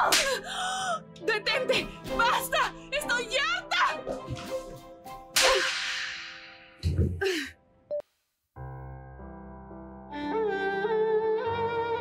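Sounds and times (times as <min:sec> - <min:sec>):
slap across the face: 0:00.0 - 0:00.4, 0:05.3 - 0:06.7.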